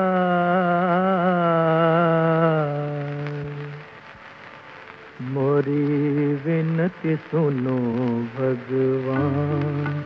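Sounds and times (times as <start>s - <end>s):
ornamented devotional vocal melody: 0.0s - 4.1s, 5.1s - 10.0s.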